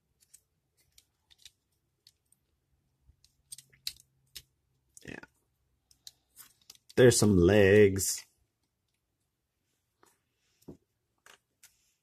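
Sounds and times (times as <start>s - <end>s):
plastic model parts clicking: 0.2s - 2.4s, 3.1s - 5.1s, 5.8s - 7.0s.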